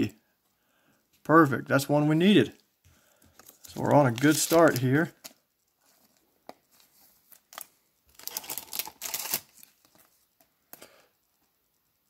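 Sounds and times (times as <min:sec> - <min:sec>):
plastic crinkling rustle: 0:03.2 - 0:10.5.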